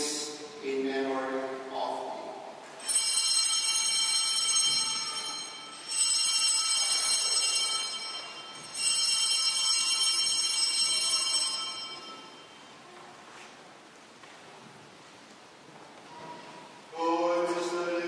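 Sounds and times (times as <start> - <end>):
altar bells ringing: 2.8 - 12.9.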